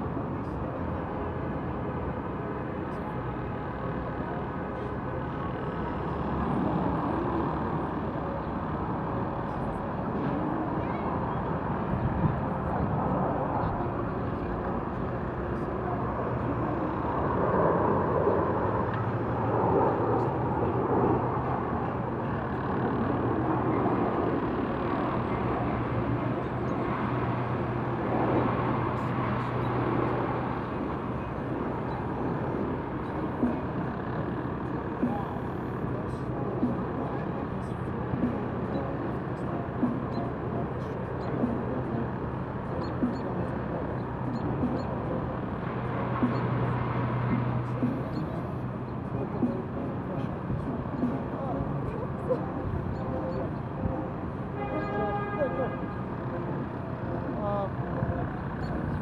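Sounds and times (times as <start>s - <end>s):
faint indistinct voices: 0.0s - 59.0s
low steady hum: 0.0s - 59.0s
traffic noise: 0.0s - 59.0s.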